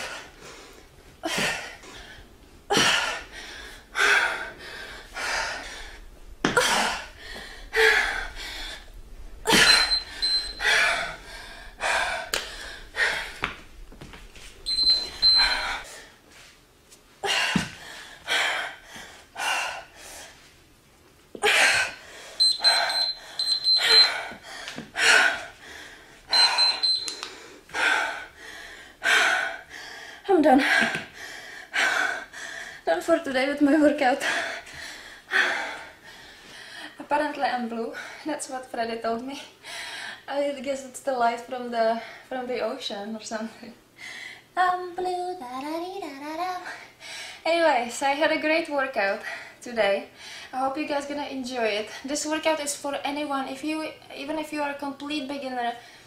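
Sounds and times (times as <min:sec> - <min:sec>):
woman breathing hard: 0:00.0 - 0:16.2, 0:17.2 - 0:20.4, 0:21.4 - 0:32.9, 0:34.2 - 0:37.0, 0:39.5 - 0:40.3, 0:44.0 - 0:44.5
short high beep: 0:09.5 - 0:10.7, 0:14.7 - 0:15.8, 0:22.4 - 0:24.1, 0:26.3 - 0:27.2.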